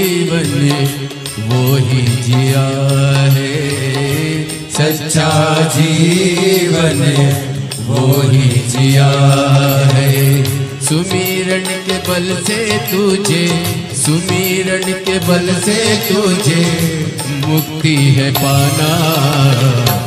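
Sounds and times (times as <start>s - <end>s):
chant-like devotional melody: 0.0s - 20.0s.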